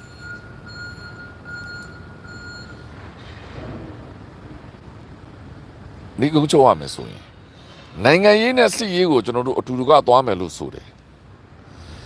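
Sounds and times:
electronic alarm beeping: 0.0 - 2.9.

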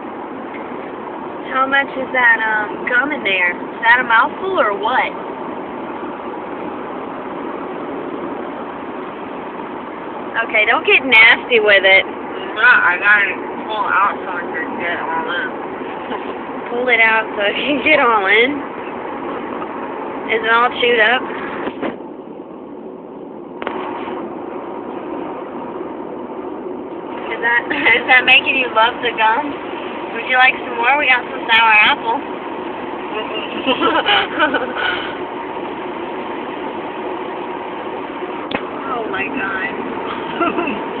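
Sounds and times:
car engine and road noise: 0.0 - 41.0.

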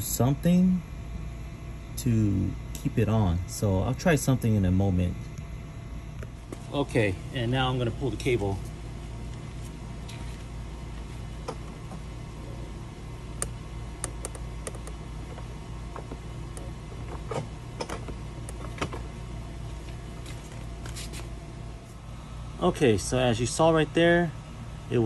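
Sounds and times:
steady low hum: 0.0 - 25.0
light mechanical clicks and taps: 13.4 - 19.0.

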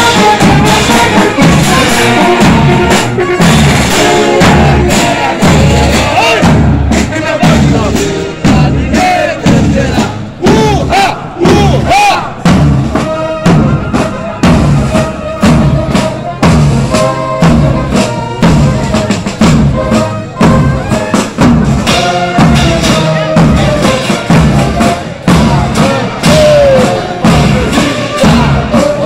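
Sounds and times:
drum corps playing marching beat: 0.0 - 29.0
voices calling out: 0.0 - 29.0.

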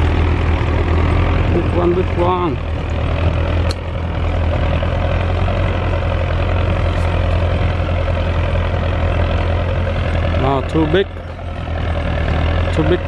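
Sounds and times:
tractor diesel engine under load: 0.0 - 13.0.

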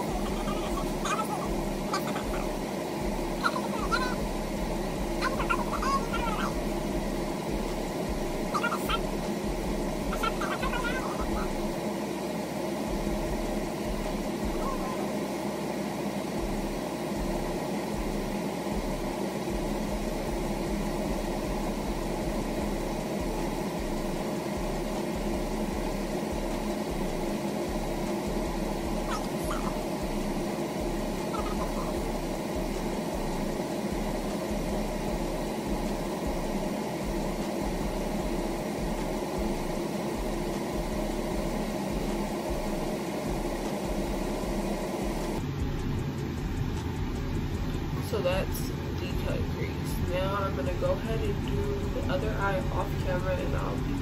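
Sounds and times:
steady hum of held tones: 0.0 - 54.0.

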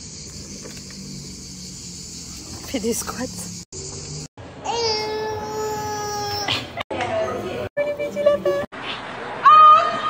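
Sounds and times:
insects chirring: 0.0 - 4.3.

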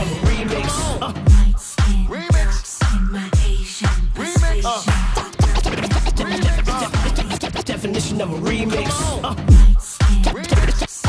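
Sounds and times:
vinyl record scratching: 0.0 - 1.9, 3.8 - 11.0.

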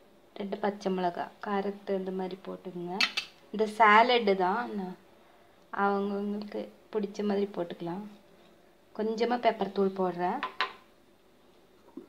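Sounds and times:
woman speaking: 0.4 - 5.0, 5.8 - 8.2, 9.0 - 10.5.

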